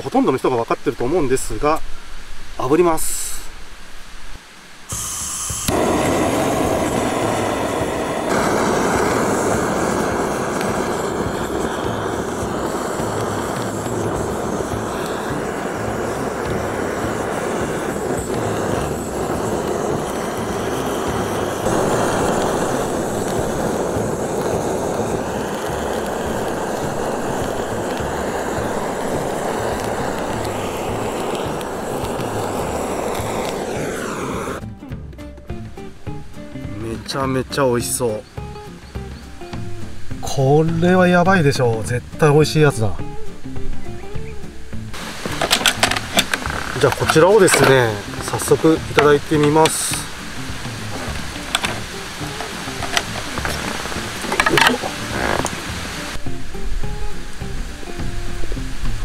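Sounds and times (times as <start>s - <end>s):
gas torch hissing: 4.8s - 34.7s, 44.2s - 59.0s.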